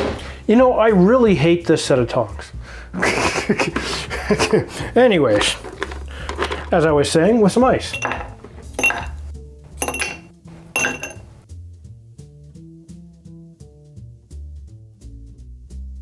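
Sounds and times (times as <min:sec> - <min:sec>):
ice cubes clinking in glass: 0:05.3 - 0:09.2, 0:09.8 - 0:11.3.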